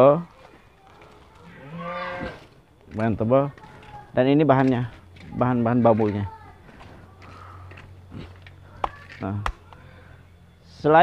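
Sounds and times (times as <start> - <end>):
sheep bleating: 1.4 - 2.4.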